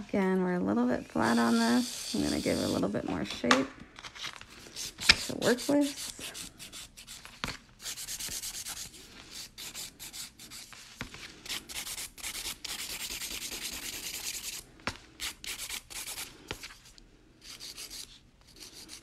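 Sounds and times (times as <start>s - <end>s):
nail file rasping on fingernail: 11.5s - 14.6s, 15.2s - 16.3s, 17.5s - 19.0s.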